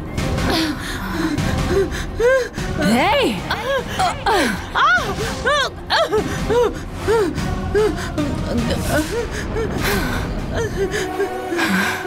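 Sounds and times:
background music: 0.0s - 12.0s
woman gasping and whimpering: 3.4s - 12.0s.

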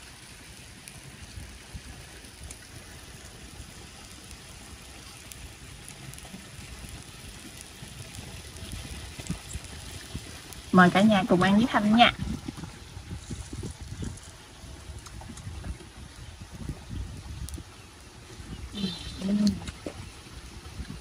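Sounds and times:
clams sizzling and bubbling: 0.0s - 21.0s.

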